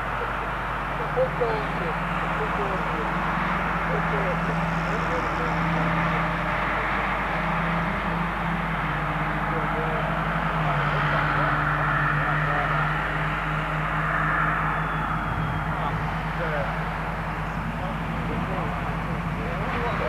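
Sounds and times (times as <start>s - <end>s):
faint indistinct voices: 0.0s - 8.0s, 8.9s - 20.0s
engine drone with rushing hiss: 0.0s - 20.0s.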